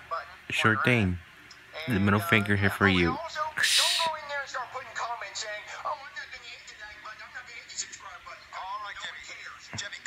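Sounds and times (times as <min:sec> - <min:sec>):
cartoonish puppet voices from tv: 0:00.0 - 0:10.0
faint music: 0:00.0 - 0:10.0.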